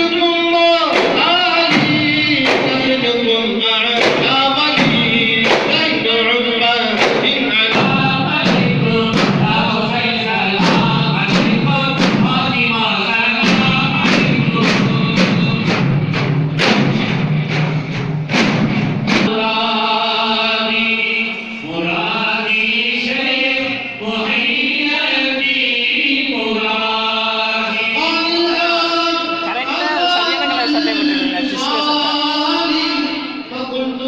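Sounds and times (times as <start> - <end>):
men chanting in unison: 0.0 - 15.9, 19.3 - 34.0
frame drums quick beat: 0.8 - 19.4.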